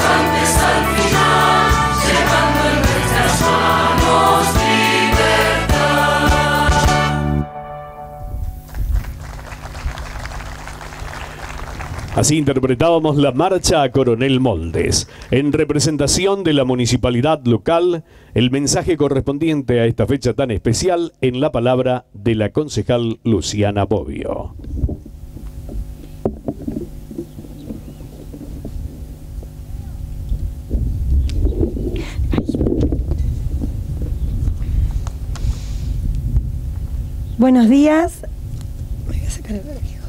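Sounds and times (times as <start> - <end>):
electrical hum: 0.0 - 40.0
crowd applauding: 8.6 - 12.6
faint low hum: 22.2 - 35.1.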